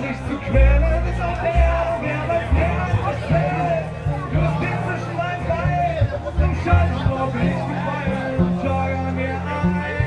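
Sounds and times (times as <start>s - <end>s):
acoustic guitar: 0.0s - 10.0s
plucked double bass: 0.0s - 10.0s.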